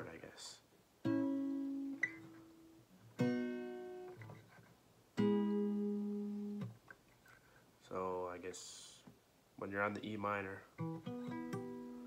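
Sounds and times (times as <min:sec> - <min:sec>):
acoustic guitar chords strummed: 0:01.0 - 0:04.5, 0:05.2 - 0:06.8, 0:10.8 - 0:12.0.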